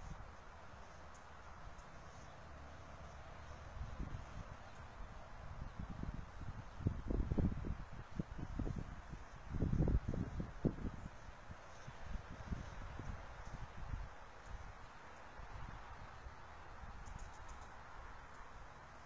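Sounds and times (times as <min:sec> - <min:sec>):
wind buffeting microphone: 0:03.8 - 0:14.8.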